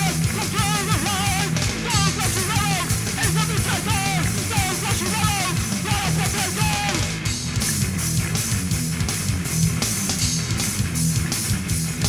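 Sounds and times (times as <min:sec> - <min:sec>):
bass guitar: 0:00.0 - 0:12.0
drums with cymbal hits: 0:00.0 - 0:12.0
electric guitar: 0:00.0 - 0:12.0.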